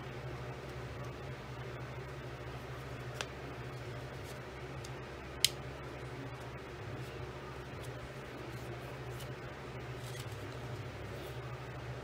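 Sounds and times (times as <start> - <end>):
steady low hum: 0.0 - 12.0
cardstock rustling and crinkling: 7.0 - 11.4.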